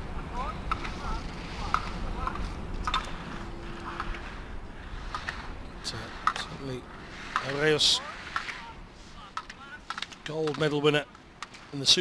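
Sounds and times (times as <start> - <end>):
skis scraping on hard snow: 0.7 - 12.0.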